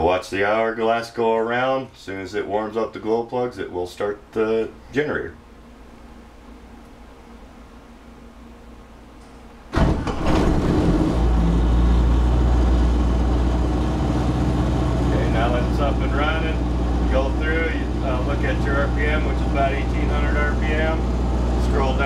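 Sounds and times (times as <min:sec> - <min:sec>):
diesel generator engine running: 0:09.7 - 0:22.0.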